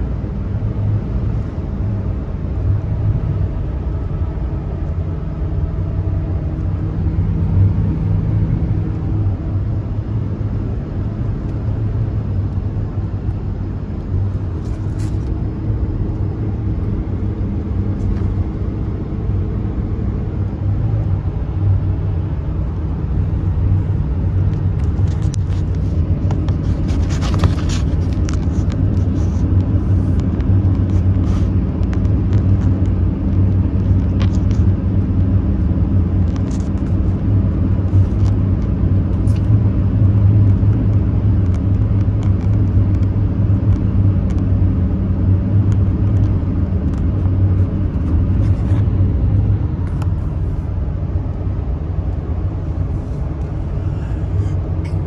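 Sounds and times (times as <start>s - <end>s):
road and engine rumble: 0.0s - 55.0s.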